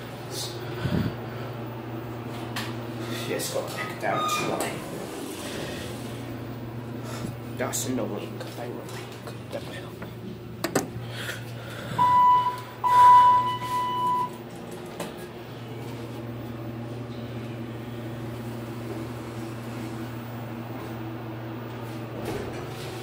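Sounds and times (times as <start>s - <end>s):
steady low hum: 0.0s - 3.8s, 4.7s - 23.0s
elevator signal beeping: 11.9s - 14.6s.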